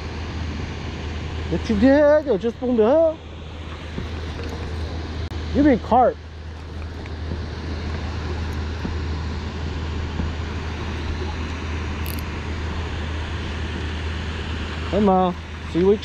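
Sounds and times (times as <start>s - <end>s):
constant low hum: 0.0s - 16.0s
water roaring through spillway: 0.0s - 16.0s.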